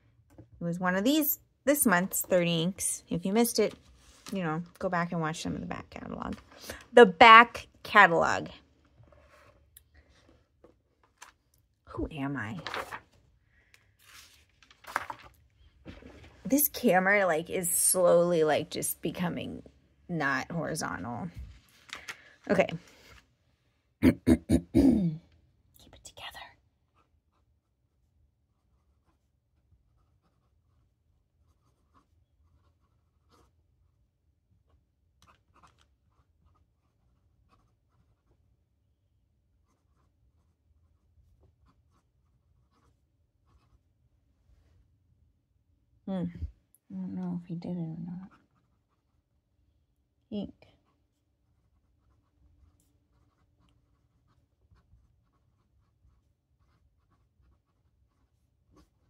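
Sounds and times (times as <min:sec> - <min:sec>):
pen rustling on paper: 0:01.7 - 0:04.9, 0:08.2 - 0:11.6, 0:12.3 - 0:18.2, 0:26.0 - 0:45.1, 0:48.0 - 0:59.0.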